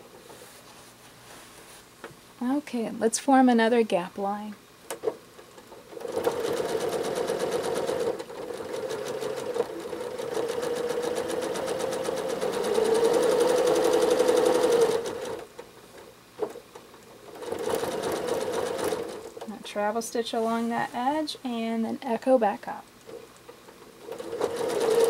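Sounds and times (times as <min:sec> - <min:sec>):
sewing machine stitching fast: 0:05.8 - 0:15.5, 0:17.3 - 0:19.3, 0:24.0 - 0:25.0.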